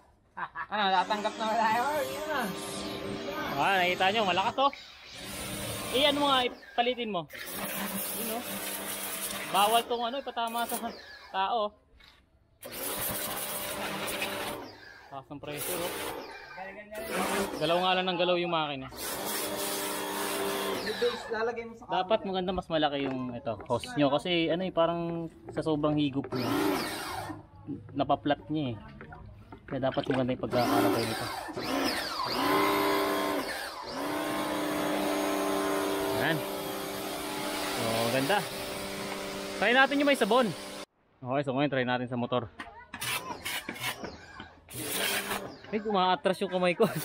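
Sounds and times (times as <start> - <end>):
pressure washer motor and pump: 1.0 - 11.4, 12.6 - 18.0, 18.9 - 21.4, 26.2 - 27.4, 30.0 - 40.9, 43.0 - 45.7
high-pressure water jet hissing: 1.1 - 11.2, 35.9 - 40.9.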